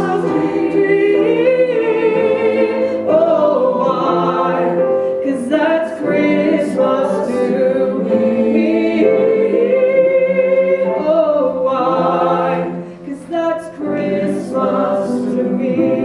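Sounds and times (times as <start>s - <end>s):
vocal ensemble singing harmony: 0.0s - 16.0s.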